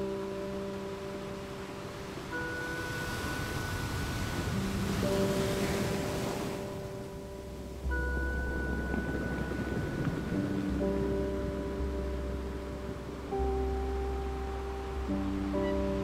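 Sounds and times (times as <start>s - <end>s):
ocean surf on sandy beach: 0.0s - 16.0s
slow background music chords: 0.0s - 16.0s.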